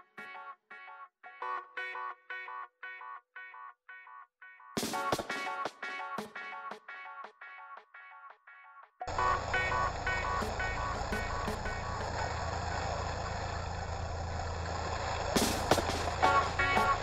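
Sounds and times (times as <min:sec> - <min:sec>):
boat engine humming: 0:09.1 - 0:17.0.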